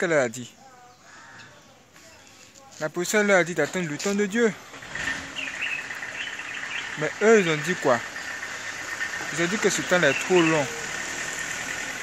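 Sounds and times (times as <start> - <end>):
bird chirps: 0.0 - 11.2.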